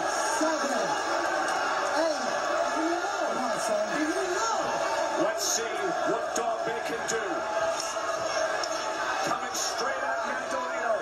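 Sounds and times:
commentator talking: 0.0 - 1.2, 1.9 - 7.5, 9.2 - 11.0
arena crowd noise: 0.0 - 11.0.

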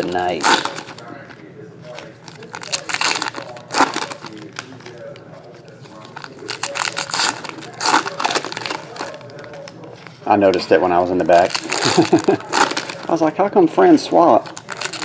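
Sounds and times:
foil wrappers crinkling and tearing: 0.0 - 13.4, 14.1 - 15.0.

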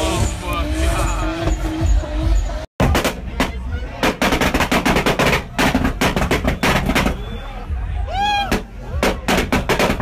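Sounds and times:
car exhaust banging and popping: 0.0 - 7.4, 8.5 - 10.0.

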